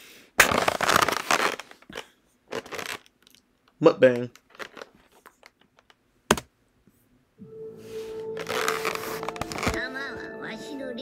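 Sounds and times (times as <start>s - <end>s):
paper and food box rustling: 4.5s - 5.5s, 8.0s - 9.9s.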